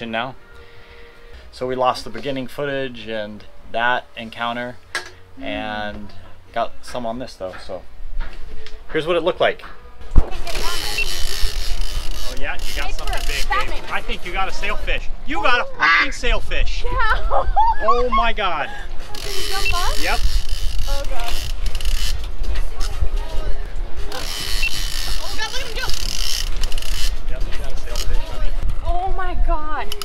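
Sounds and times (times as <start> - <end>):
faint indistinct voices: 7.5 - 17.9, 18.7 - 30.0
wind rumbling on microphone: 16.4 - 30.0
woman laughing: 17.0 - 18.1.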